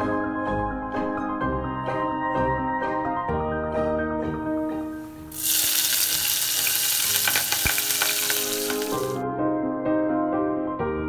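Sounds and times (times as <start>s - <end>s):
hot oil sizzling in a pan: 5.3s - 9.2s.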